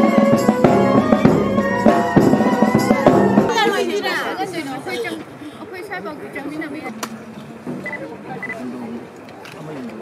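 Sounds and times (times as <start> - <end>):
music with sustained tones and drums: 0.0 - 3.6
people talking at once: 3.5 - 10.0.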